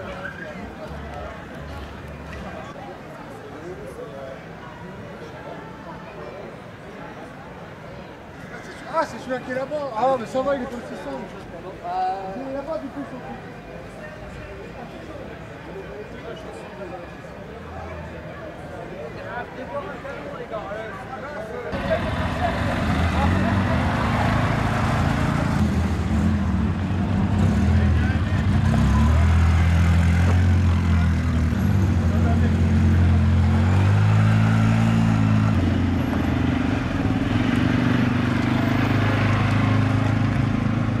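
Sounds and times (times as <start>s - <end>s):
crowd voices: 0.0s - 41.0s
utility vehicle engines running: 21.7s - 41.0s.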